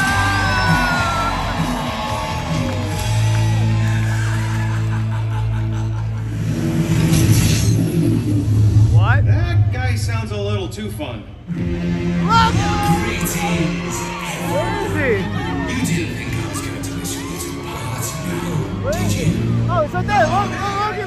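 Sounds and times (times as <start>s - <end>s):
dramatic music over sound system: 0.0s - 21.0s.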